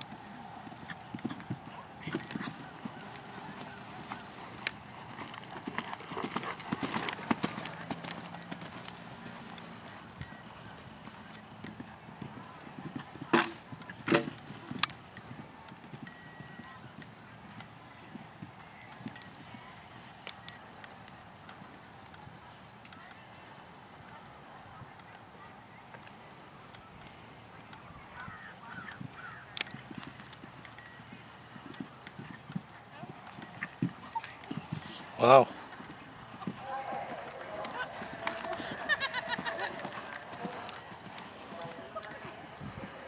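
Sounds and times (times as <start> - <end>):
horse hoofbeats on grass: 0.0 - 23.5, 26.8 - 43.0.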